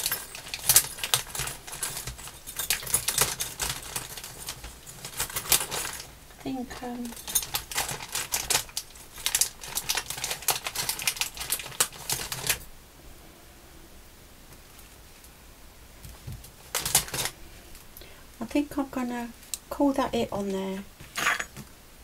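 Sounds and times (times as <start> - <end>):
plastic bag crinkling: 0.0 - 12.7, 16.2 - 17.9.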